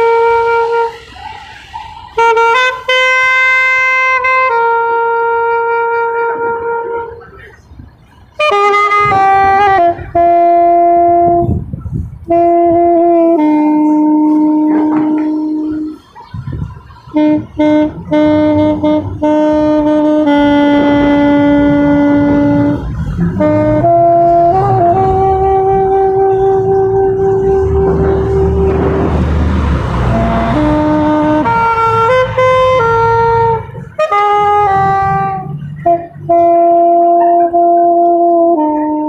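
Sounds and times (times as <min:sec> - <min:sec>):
saxophone-like slow melody: 0:00.0 - 0:07.5, 0:08.4 - 0:16.1, 0:17.0 - 0:39.0
low rumble: 0:17.4 - 0:32.2.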